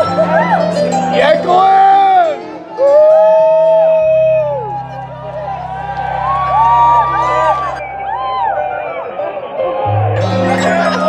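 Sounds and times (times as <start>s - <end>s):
keyboards: 0.0s - 11.0s.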